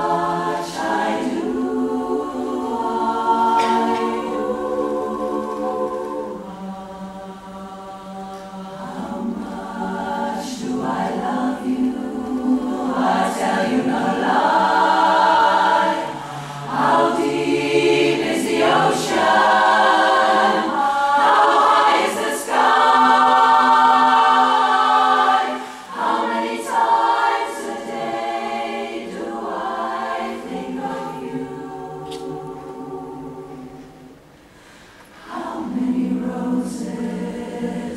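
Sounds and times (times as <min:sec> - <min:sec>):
women's chorus singing a cappella: 0:00.0 - 0:37.9.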